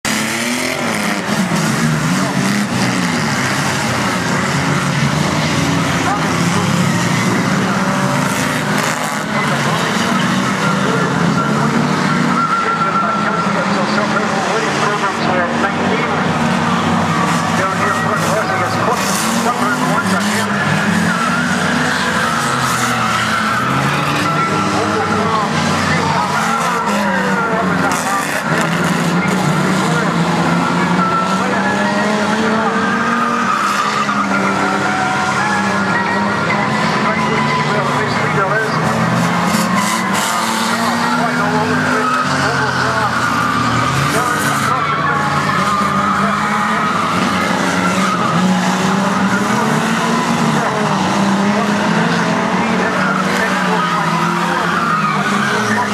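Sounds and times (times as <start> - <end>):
racing car engines revving: 0.0 - 55.9
tyres skidding: 0.0 - 55.9.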